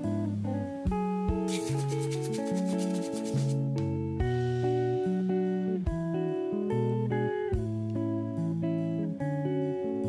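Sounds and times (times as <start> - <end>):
guitar music: 0.0 - 10.0
whisk scratching in ceramic bowl: 1.5 - 3.6.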